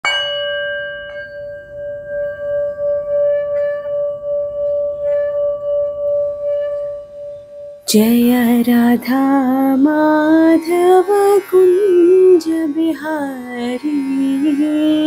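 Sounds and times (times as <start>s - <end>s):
sung chant: 7.9s - 15.0s.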